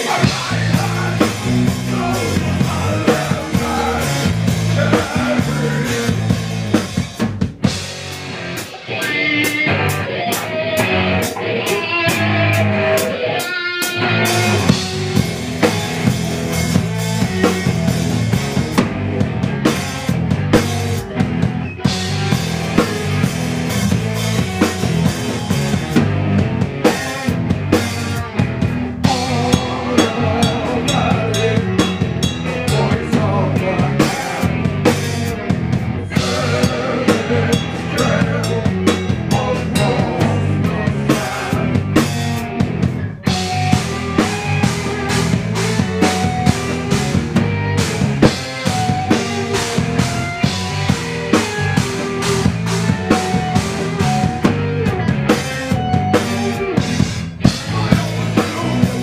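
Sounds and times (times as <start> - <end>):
drum kit beat: 0.0 - 59.0
electric guitars: 0.0 - 59.0
live rock band: 0.0 - 59.0.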